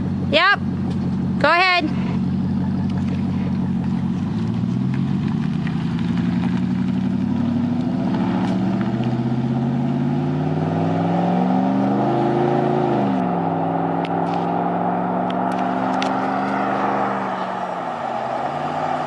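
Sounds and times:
truck engine accelerating: 0.0s - 19.0s.

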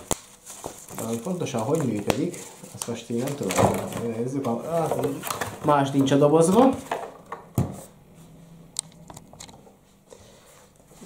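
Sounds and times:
cardboard clicks and rustles: 0.0s - 7.9s.

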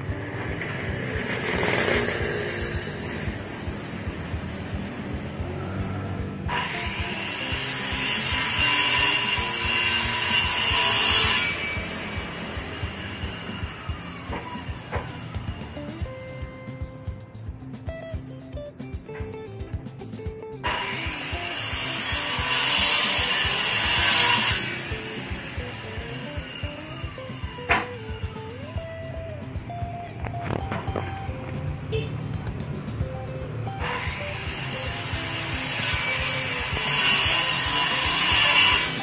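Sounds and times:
background music: 0.0s - 39.0s.

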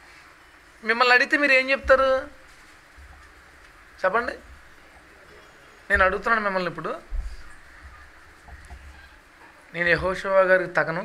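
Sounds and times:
microphone thump: 3.0s - 3.3s, 5.9s - 9.2s.

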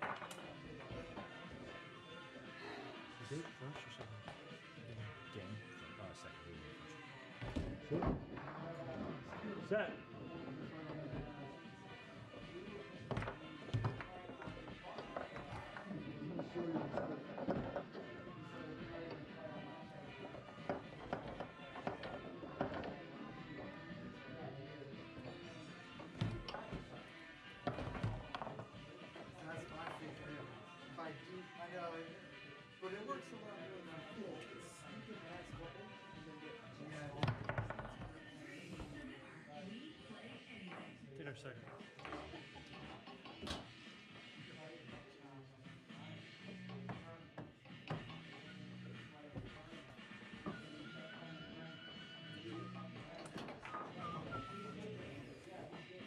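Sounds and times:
foosball ball knocks and clacks: 0.0s - 1.3s, 13.1s - 18.0s, 20.2s - 23.1s, 37.2s - 38.2s, 41.7s - 43.7s
background music: 0.0s - 56.0s
voices in room: 0.0s - 56.0s.

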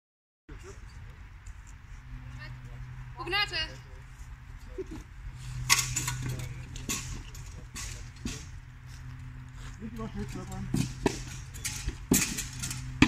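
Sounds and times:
wooden spears clacking: 5.6s - 9.3s, 10.0s - 13.0s.

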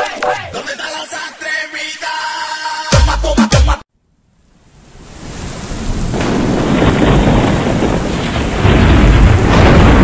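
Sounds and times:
heavy rain: 4.4s - 10.0s
rumbling thunder: 5.8s - 10.0s.

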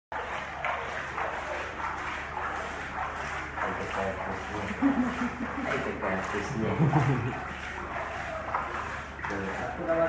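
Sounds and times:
pool water splashing: 0.1s - 10.0s.

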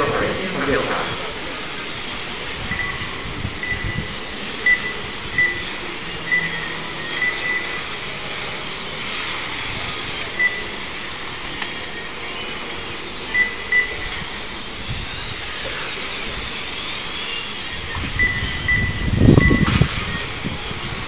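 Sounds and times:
rc car motors whining: 0.0s - 21.0s.

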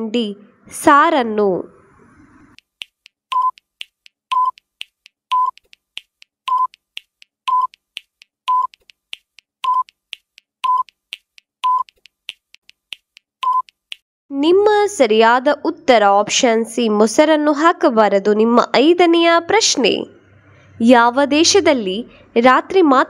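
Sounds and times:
countdown timer ticking: 2.6s - 14.0s.

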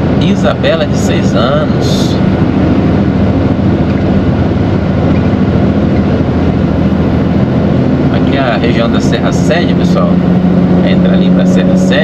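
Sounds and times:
truck diesel engine droning: 0.0s - 12.0s.

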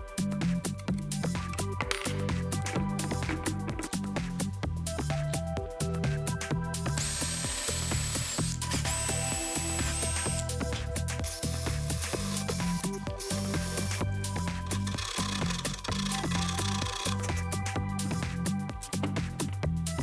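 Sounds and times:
electronic music with steady beat: 0.0s - 20.0s
cordless drill whining: 6.9s - 17.4s.

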